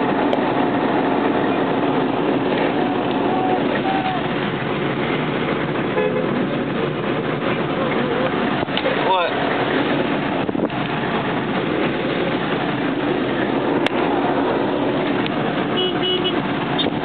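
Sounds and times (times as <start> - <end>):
engine and tyre noise: 0.0 - 17.0
car horns tooting: 5.8 - 6.5, 15.6 - 17.0.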